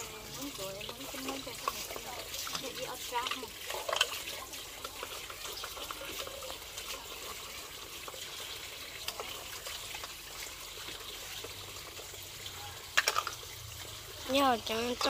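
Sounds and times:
bowls and utensils clinking: 0.0s - 7.3s, 12.7s - 13.6s
water sloshing and trickling: 0.0s - 15.0s.

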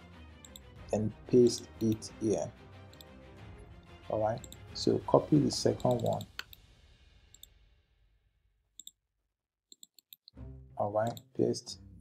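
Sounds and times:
computer mouse clicks: 5.8s - 6.6s, 9.7s - 10.3s, 11.0s - 11.2s.

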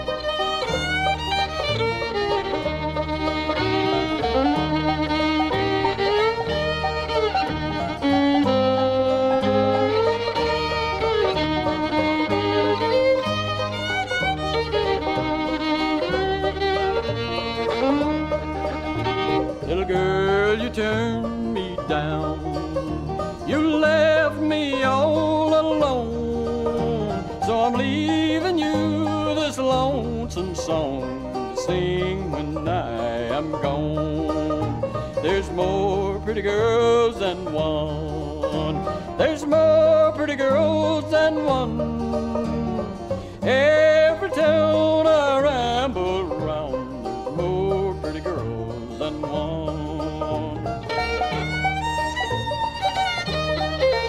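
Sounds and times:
banjo: 0.0s - 54.0s
bass line: 0.0s - 54.0s
fiddle: 0.0s - 54.0s
guitar: 0.0s - 54.0s.

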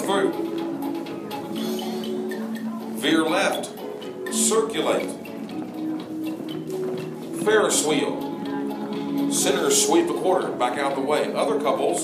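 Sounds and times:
square-dance music: 0.0s - 12.0s.

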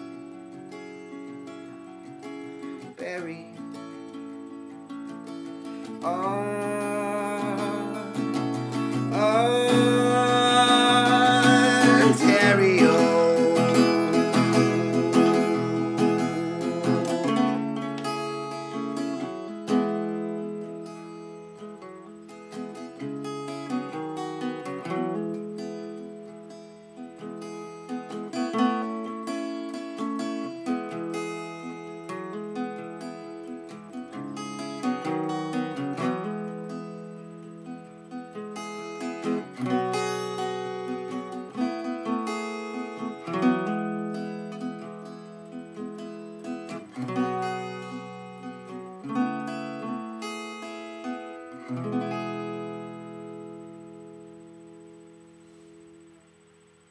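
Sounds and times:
acoustic guitar strumming: 0.0s - 56.9s.

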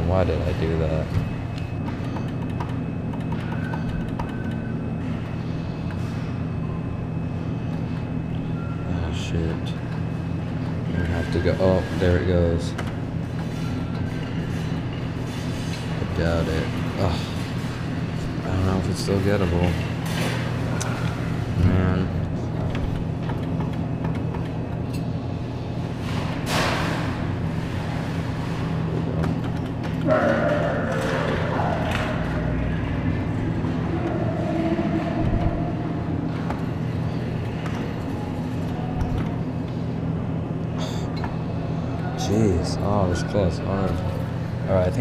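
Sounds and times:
steady low hum: 0.0s - 45.0s
indistinct voices: 30.0s - 39.4s.

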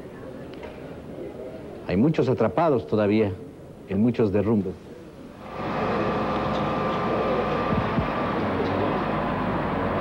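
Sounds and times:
heavy vehicle engines rumbling: 5.4s - 10.0s.

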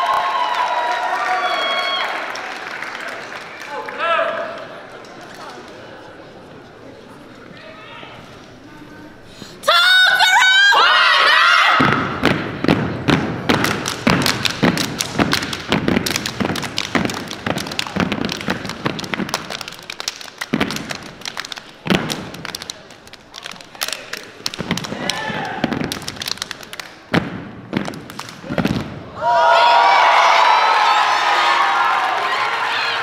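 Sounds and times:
stomps on hardwood floor: 11.8s - 19.4s
hand claps: 13.2s - 28.9s.

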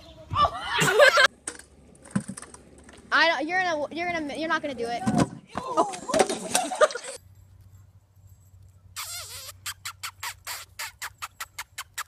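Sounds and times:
puppy squeaks: 9.0s - 12.0s.

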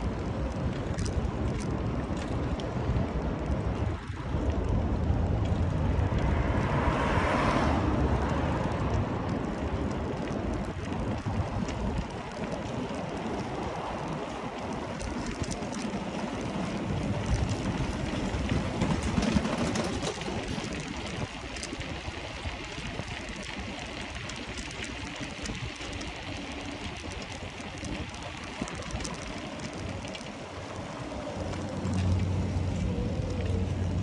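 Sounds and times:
bike clicks and rattles: 0.0s - 6.4s, 7.9s - 34.0s
wind buffeting microphone: 0.0s - 34.0s
tyres rolling over brick paving: 8.0s - 34.0s.

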